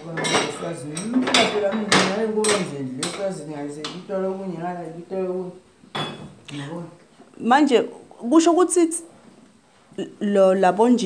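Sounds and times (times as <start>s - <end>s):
metal kitchenware clattering on pot: 0.0s - 3.4s.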